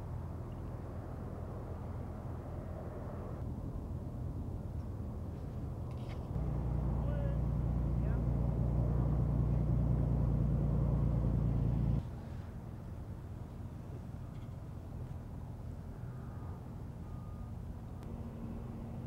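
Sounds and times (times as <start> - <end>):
car engine idling: 6.4 - 12.0.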